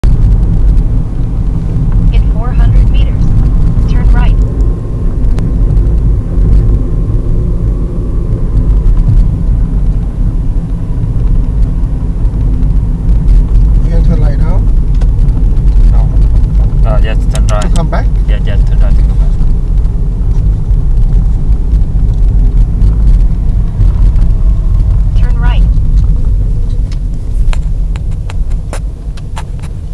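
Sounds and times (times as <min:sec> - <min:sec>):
car engine and tyres rumbling: 0:00.0 - 0:29.9.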